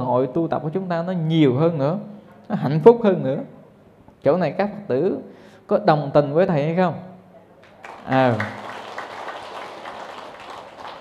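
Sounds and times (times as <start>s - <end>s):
audience applauding: 7.6s - 11.0s.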